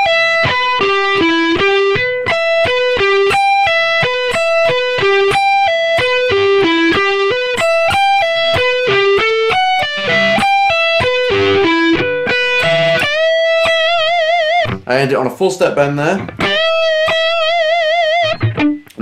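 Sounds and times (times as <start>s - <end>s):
guitar bend with vibrato: 0.0s - 14.9s, 16.2s - 19.0s
electric guitar arpeggio lick: 0.0s - 15.0s, 15.6s - 19.0s.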